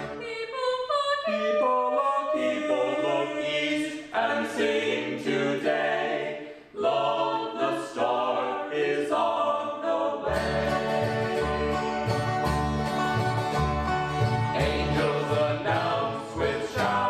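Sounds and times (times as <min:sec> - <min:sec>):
string band playing: 0:00.0 - 0:00.2, 0:10.2 - 0:17.0
group singing in harmony: 0:00.0 - 0:17.0.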